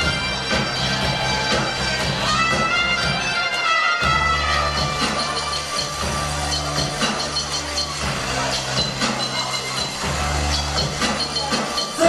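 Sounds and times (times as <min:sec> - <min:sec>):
dancing crowd noise: 0:00.0 - 0:12.0
live band dance music: 0:00.0 - 0:12.0
steady bass line: 0:00.0 - 0:12.0.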